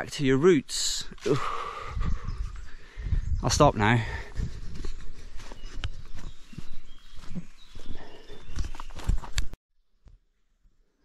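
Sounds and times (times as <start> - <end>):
footsteps on leafy path: 3.6 - 9.6.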